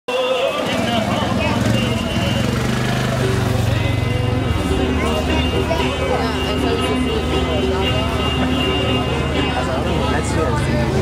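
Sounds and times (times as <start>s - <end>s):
people talking: 0.1s - 11.0s
engine running: 0.2s - 11.0s.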